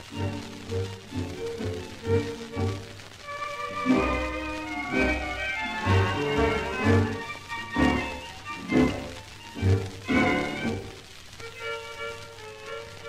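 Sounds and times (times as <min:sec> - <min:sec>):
tango dance orchestra record: 0:00.0 - 0:13.0.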